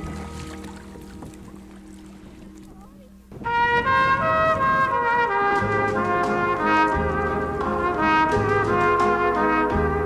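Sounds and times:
paddle splashing in water: 0.0s - 5.2s
soft background music: 0.0s - 10.0s.

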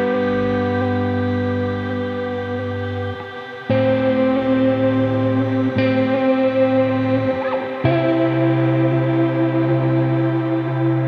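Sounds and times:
ambient electronic music chords: 0.0s - 11.0s.

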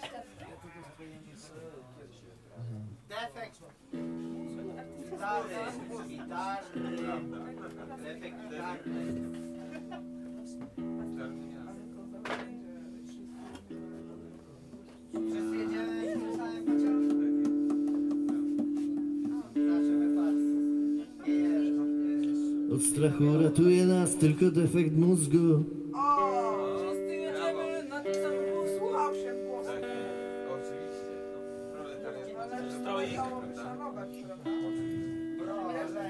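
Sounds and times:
quiet talking: 0.0s - 36.0s
electric guitar strings ringing: 3.9s - 36.0s.

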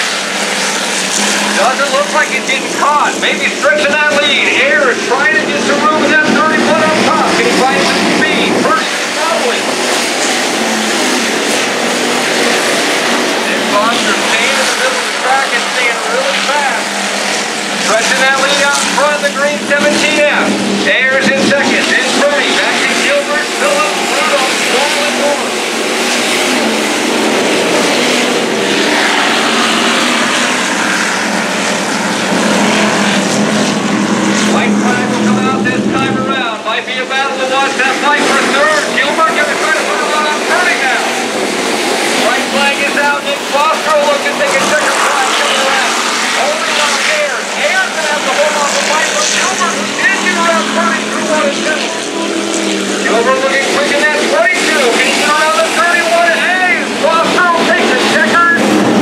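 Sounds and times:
race car engines: 0.0s - 59.0s
voice over loudspeakers: 0.9s - 26.8s, 27.4s - 59.0s.

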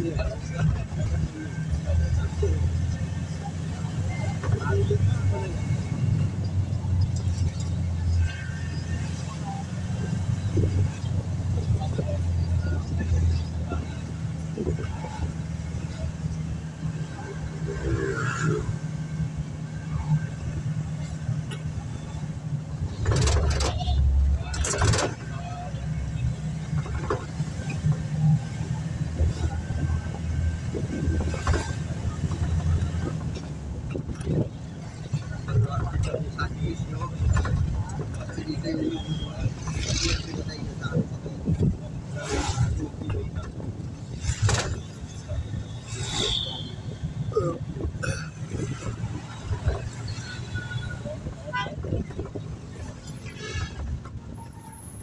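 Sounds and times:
van engine and road noise: 0.0s - 55.0s.

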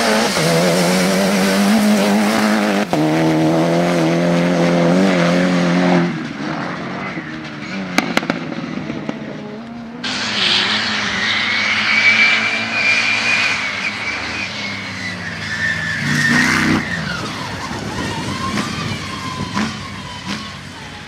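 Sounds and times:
off-road engines revving: 0.0s - 12.2s, 15.1s - 20.7s
high whining tone: 9.6s - 20.6s.

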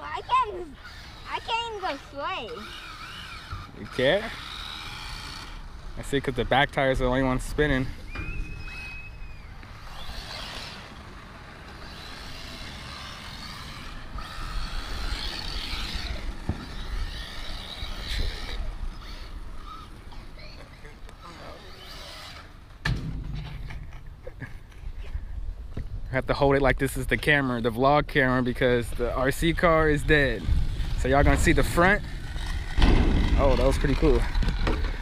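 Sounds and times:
steady motor whine: 0.0s - 25.1s, 28.8s - 35.0s
rc car tyres rumbling: 0.0s - 26.2s, 26.9s - 35.0s.

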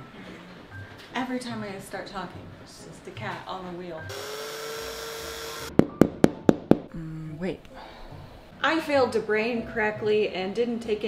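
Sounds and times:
power drill whine: 4.1s - 5.7s.

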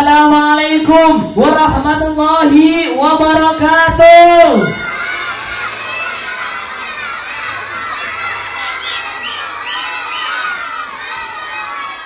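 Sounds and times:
children shouting in unison: 4.7s - 12.0s.

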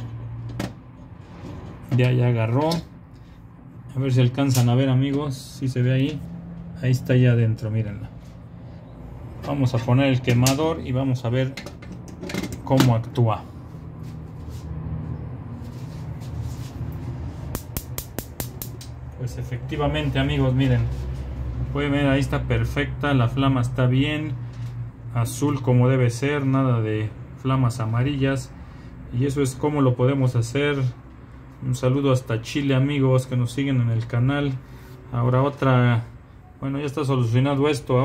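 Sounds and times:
sharp metallic click: 17.5s - 19.0s.

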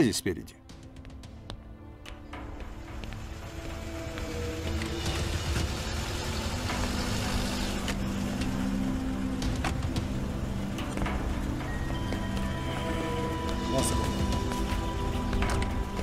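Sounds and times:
background music: 0.0s - 16.0s
car driving up and stopping: 3.0s - 12.9s.

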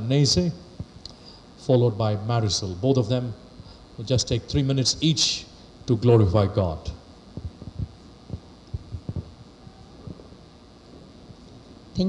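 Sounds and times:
faint hum: 0.0s - 12.0s
microphone handling thumps: 7.3s - 10.4s.

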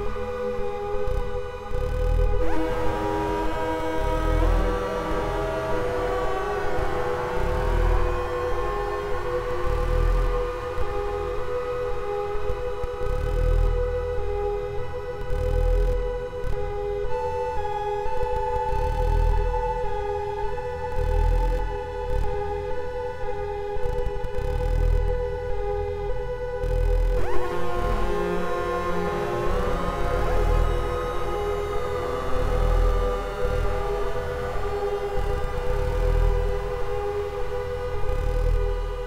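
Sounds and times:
dark synthesizer drone: 0.0s - 39.0s
slow pulsing low throb: 0.0s - 39.0s.

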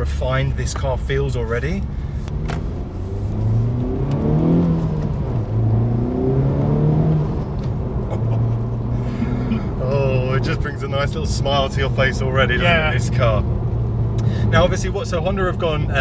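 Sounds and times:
car engine accelerating: 0.7s - 16.0s.

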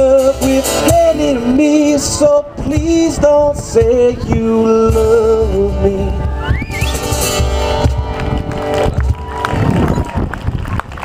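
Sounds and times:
acoustic guitar chords: 0.0s - 9.8s
scattered hand claps: 7.7s - 11.0s.

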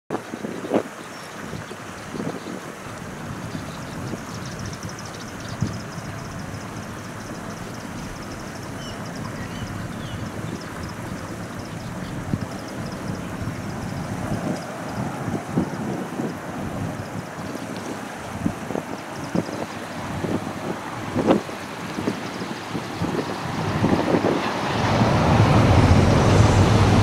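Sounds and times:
rushing outdoor background noise: 0.1s - 27.0s
faint rapid high ticking: 2.8s - 23.9s.

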